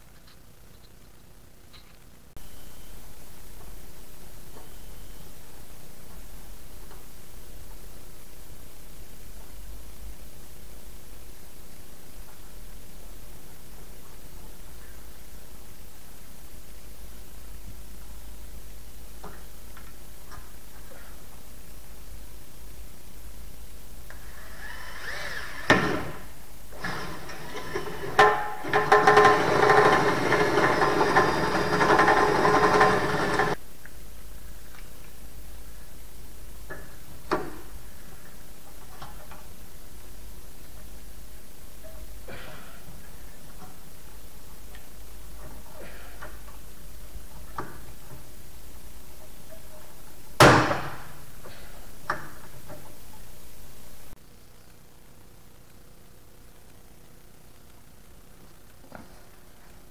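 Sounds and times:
cordless drill running: 0:26.8 - 0:33.6
drill click: 0:26.8 - 0:33.6.

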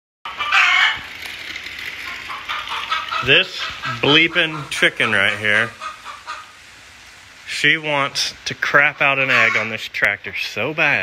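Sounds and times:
chicken squawk: 0:00.3 - 0:01.0, 0:02.1 - 0:06.6, 0:09.2 - 0:09.8.

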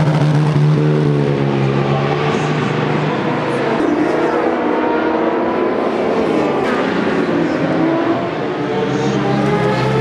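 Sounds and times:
motorcycle engines revving: 0:00.0 - 0:10.0.

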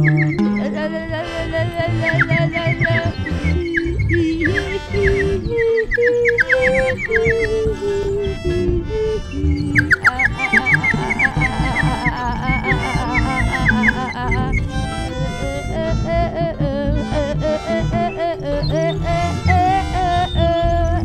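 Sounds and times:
busy low texture: 0:00.0 - 0:21.0
held notes in middle register: 0:00.0 - 0:21.0.

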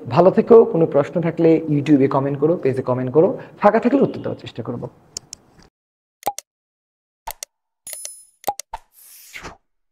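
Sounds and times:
quick clicks and pops: 0:07.3 - 0:09.6.

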